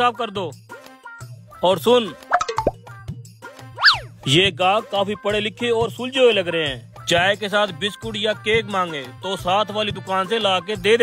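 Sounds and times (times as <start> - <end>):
background music: 0.0 - 11.0
falling plop blips: 2.3 - 2.8.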